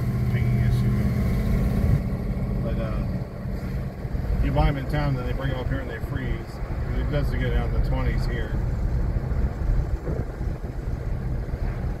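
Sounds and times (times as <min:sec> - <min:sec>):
car engine and road rumble: 0:00.0 - 0:12.0
wind buffeting microphone: 0:03.2 - 0:12.0.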